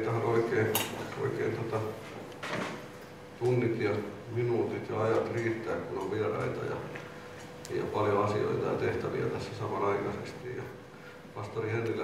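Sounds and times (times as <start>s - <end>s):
man speaking: 0.0s - 2.1s, 3.4s - 7.0s, 7.6s - 10.8s, 11.4s - 12.0s.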